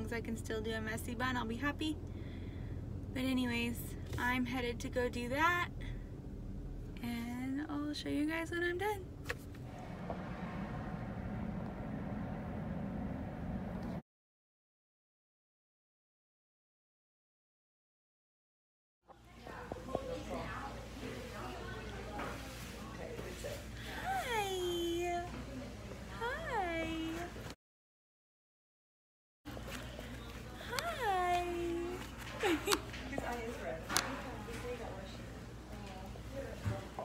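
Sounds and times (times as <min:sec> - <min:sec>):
car engine rumble inside cabin: 0:09.4 - 0:14.0.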